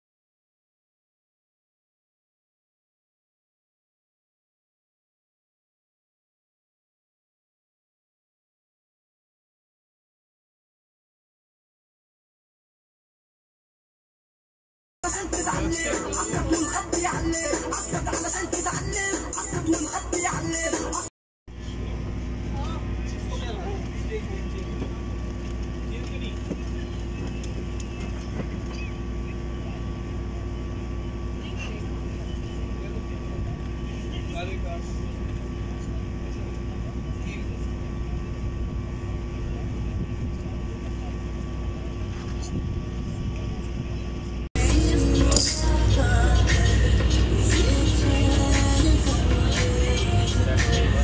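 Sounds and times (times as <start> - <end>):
faint voices: 15.0 - 51.0
boat engine droning: 21.5 - 51.0.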